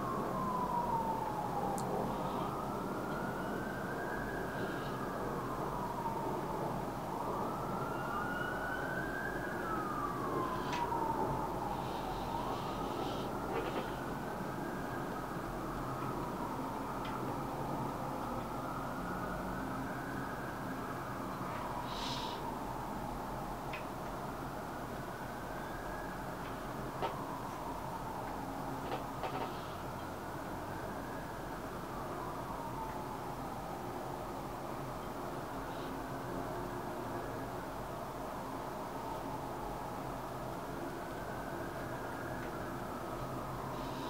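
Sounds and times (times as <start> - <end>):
siren wailing: 0.0 - 44.0.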